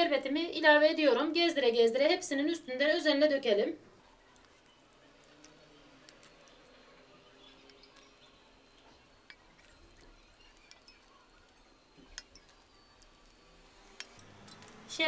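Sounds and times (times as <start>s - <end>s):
syrup crackling on pastry: 3.9s - 15.0s.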